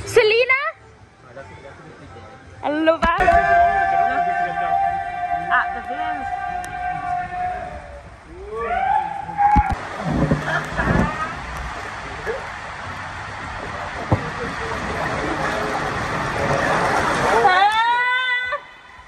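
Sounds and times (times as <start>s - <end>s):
water rushing through slide tube: 3.3s - 19.0s.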